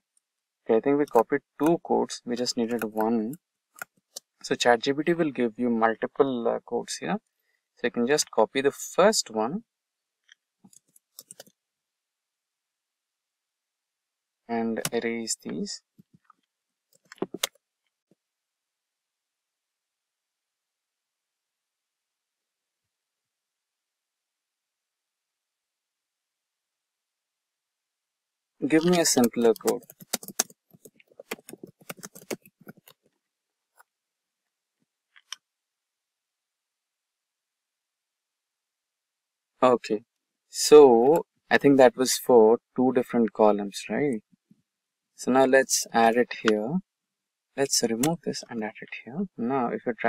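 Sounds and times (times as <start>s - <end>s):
computer mouse and keyboard clicking: 2.6s - 3.1s, 10.7s - 11.5s, 16.9s - 17.6s, 28.6s - 33.0s.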